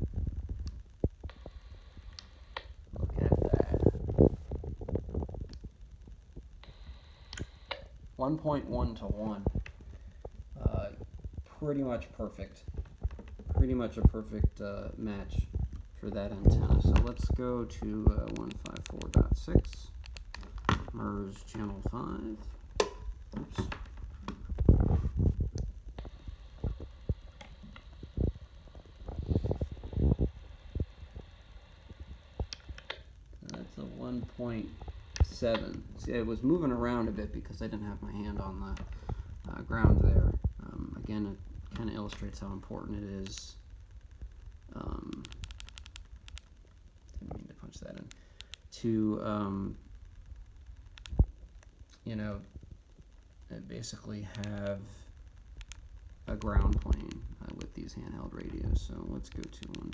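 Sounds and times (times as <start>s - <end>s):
faint steady hiss: 0.0s - 59.9s
small clicks: 17.8s - 20.9s, 45.0s - 48.8s, 50.6s - 52.0s, 54.3s - 54.8s, 55.4s - 59.9s.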